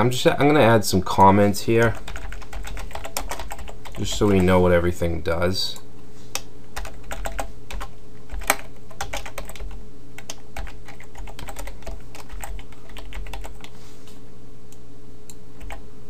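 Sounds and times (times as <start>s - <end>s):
keyboard typing: 1.8s - 4.6s, 6.4s - 13.7s, 15.6s - 15.8s.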